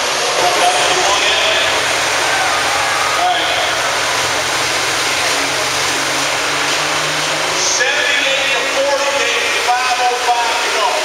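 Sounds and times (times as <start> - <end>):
crowd voices: 0.0 - 11.0
diesel engine running loud: 0.0 - 11.0.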